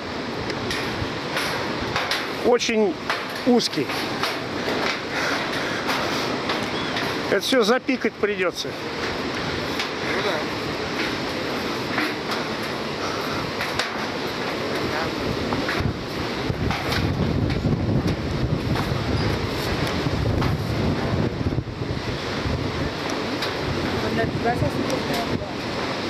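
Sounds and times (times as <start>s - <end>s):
distant waterfall rumble: 0.0s - 26.0s
river rushing: 0.0s - 26.0s
wind buffeting microphone: 8.8s - 26.0s.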